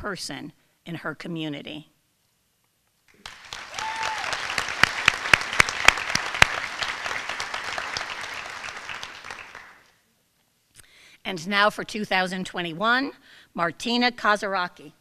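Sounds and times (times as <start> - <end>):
audience applauding: 3.1 - 9.9
sharp close claps: 3.1 - 9.9.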